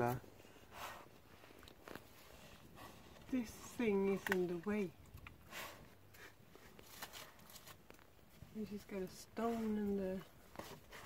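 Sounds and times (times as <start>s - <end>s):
dog scraping soil and stones: 5.4s - 7.9s, 8.7s - 11.0s.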